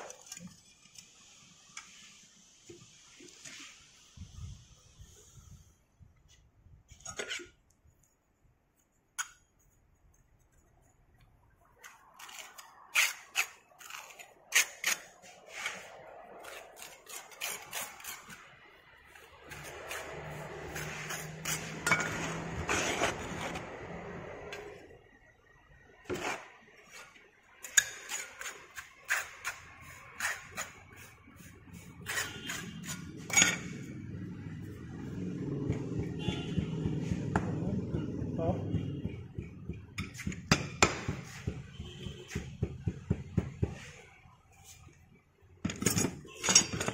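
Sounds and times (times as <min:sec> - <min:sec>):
metal tools clinking on steel: 0:33.3 - 0:33.7, 0:45.7 - 0:46.9.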